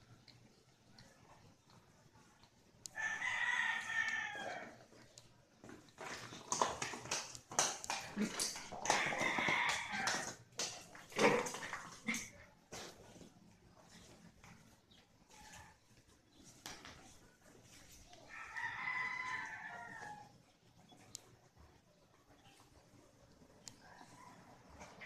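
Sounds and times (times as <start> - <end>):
clatters on tile floor: 4.6 - 18.0.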